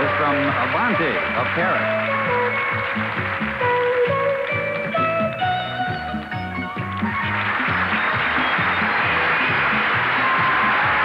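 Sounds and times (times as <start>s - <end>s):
up-tempo music with bass beat: 0.0s - 11.0s.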